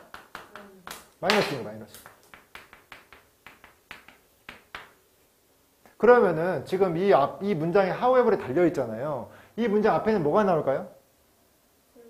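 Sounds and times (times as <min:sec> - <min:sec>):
chalk tapping on chalkboard: 0:00.0 - 0:05.0.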